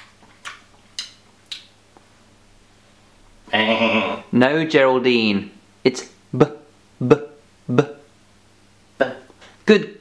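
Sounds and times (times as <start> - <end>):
sharp mouth clicks: 0.2 - 2.1.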